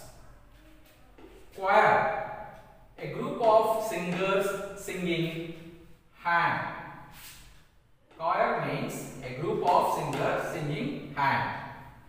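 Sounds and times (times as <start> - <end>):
man speaking: 1.5 - 5.6, 6.2 - 7.3, 8.1 - 11.9.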